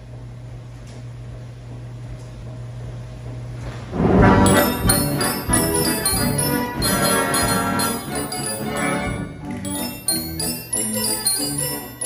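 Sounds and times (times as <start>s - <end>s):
band organ pipes playing: 4.0s - 12.0s
bells ringing: 4.4s - 12.0s
regular drum beat: 4.5s - 10.0s.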